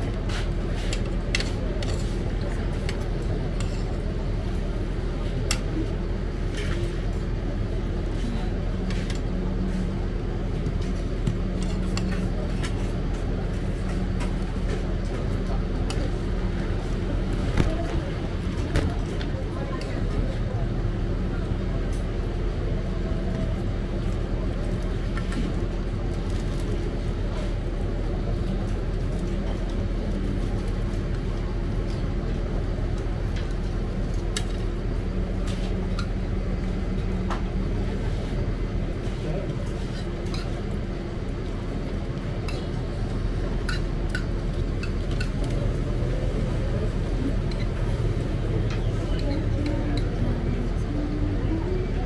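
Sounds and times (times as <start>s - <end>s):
low mechanical hum: 0.0s - 52.0s.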